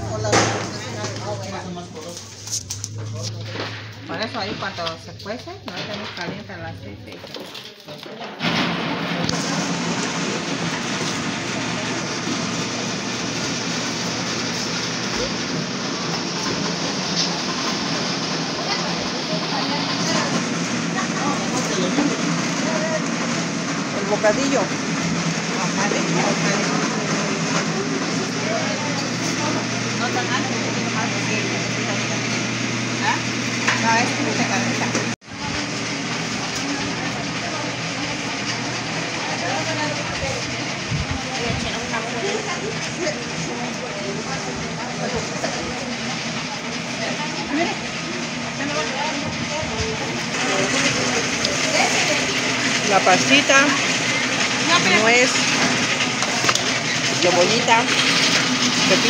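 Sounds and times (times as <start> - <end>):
crowd chatter: 0.0 - 59.0.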